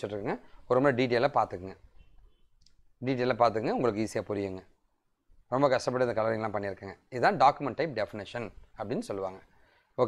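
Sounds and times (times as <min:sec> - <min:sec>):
man speaking: 0:00.0 - 0:02.1, 0:02.8 - 0:10.0.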